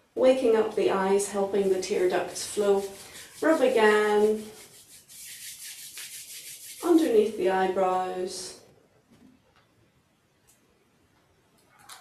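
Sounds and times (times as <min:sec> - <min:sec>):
palms rubbing together: 0:01.4 - 0:07.4.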